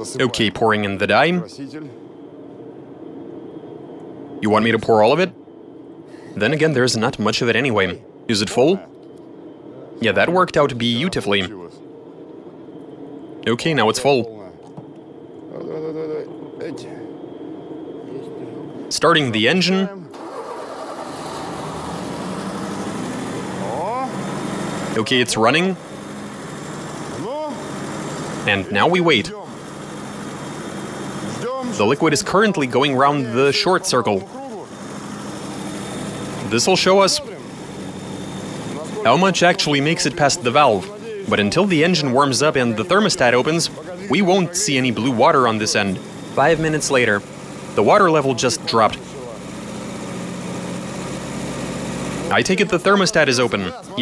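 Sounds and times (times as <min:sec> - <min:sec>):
car engine idling: 0:20.1 - 0:54.0.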